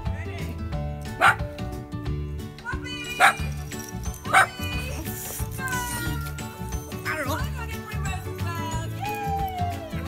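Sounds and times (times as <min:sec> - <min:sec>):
dog barking: 0:01.2 - 0:01.4, 0:03.2 - 0:03.5, 0:04.3 - 0:04.6.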